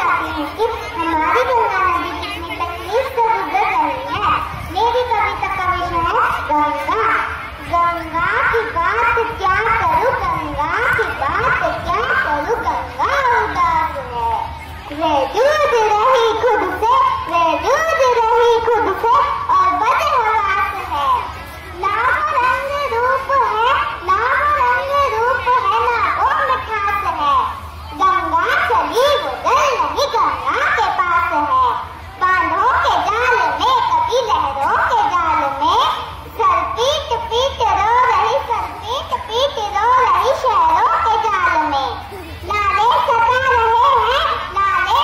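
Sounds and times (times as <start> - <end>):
girl reciting into a microphone: 0.0 - 45.0.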